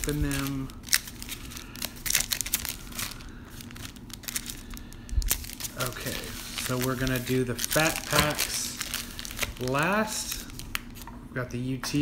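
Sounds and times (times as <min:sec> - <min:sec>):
foil wrappers crinkling: 0:00.0 - 0:11.1.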